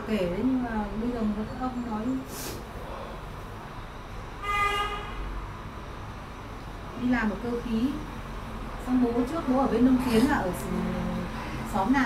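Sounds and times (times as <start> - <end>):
vehicle horn toot: 4.4 - 5.3.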